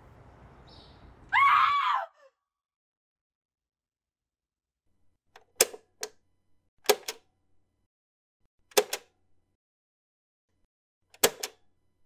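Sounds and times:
high-pitched human scream: 1.3 - 2.4.

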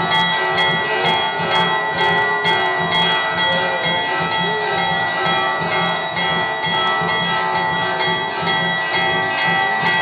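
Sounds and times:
bells ringing: 0.0 - 10.0
sharp high clashes: 0.0 - 10.0
steady beat: 0.0 - 10.0.

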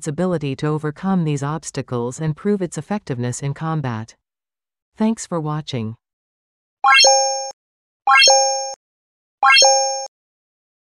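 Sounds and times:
synthesized button sound effects: 6.8 - 7.5, 8.1 - 8.8, 9.4 - 10.1.

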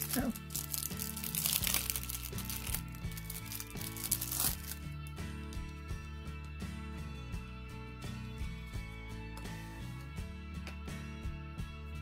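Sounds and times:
plastic sleeve crinkling: 0.0 - 5.0
background music: 0.0 - 12.0.

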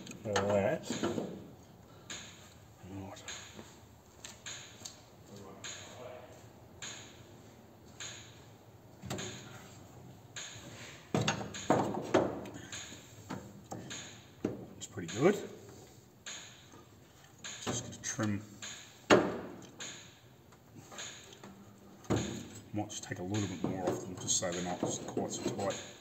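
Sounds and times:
knocks of tools and wood handled: 0.0 - 1.5, 9.0 - 9.8, 10.4 - 16.8, 17.4 - 22.6, 23.2 - 26.0.

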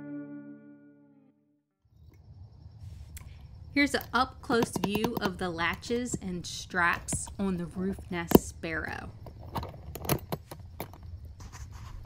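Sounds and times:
low steady rumble: 1.9 - 9.8
metal latch clicking: 9.4 - 11.0.

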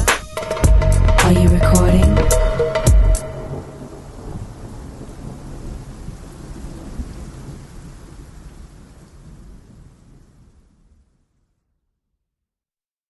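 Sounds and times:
rolling thunder: 2.1 - 11.1
rain: 3.5 - 11.6.

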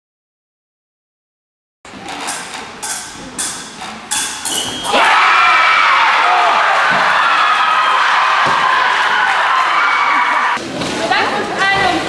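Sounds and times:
crowd shouting and cheering: 4.4 - 10.6.

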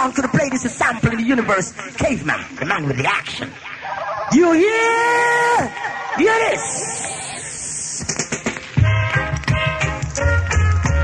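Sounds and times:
reggae music with heavy bass: 5.7 - 11.0
hissing noise: 6.5 - 8.7.

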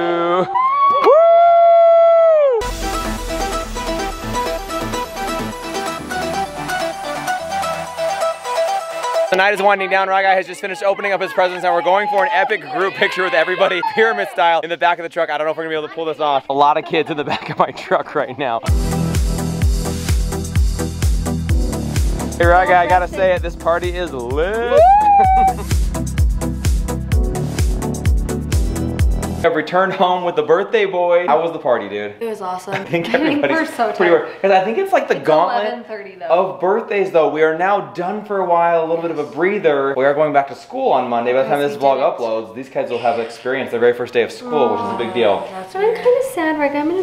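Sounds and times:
person cheering wooo: 0.0 - 2.6, 24.5 - 25.7
upbeat electronic music: 2.6 - 13.9, 18.7 - 29.4
person laughing: 16.8 - 18.0, 24.6 - 25.8, 32.7 - 33.6
music with thumping beat: 18.7 - 29.4
person shouting: 24.5 - 25.6, 44.4 - 45.4.

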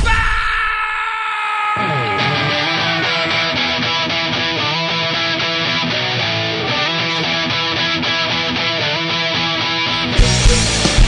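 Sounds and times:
electric guitar rock riff: 1.8 - 11.0.

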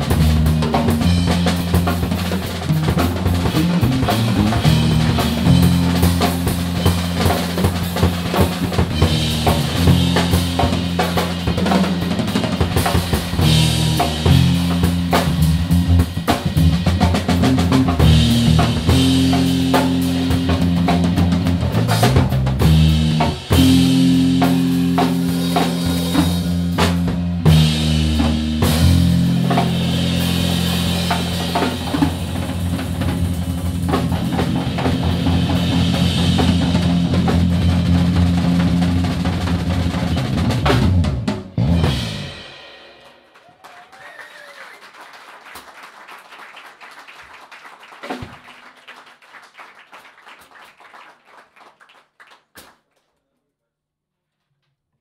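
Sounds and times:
held low bass notes: 0.0 - 42.0
busy drumming: 0.0 - 51.0.

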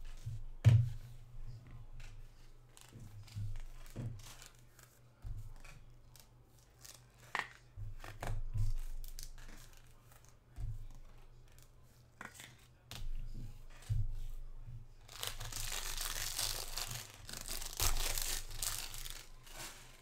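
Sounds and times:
foil wrappers crinkling: 15.0 - 20.0.

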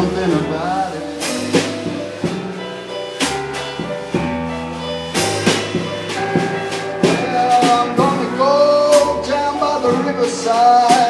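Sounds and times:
drum kit: 0.0 - 11.0
keyboard: 0.0 - 11.0.

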